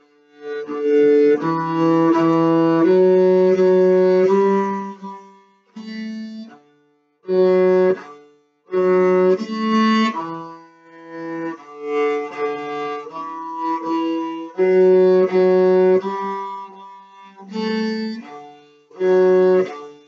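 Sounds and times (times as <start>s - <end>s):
bowed cello melody: 0.0s - 20.0s.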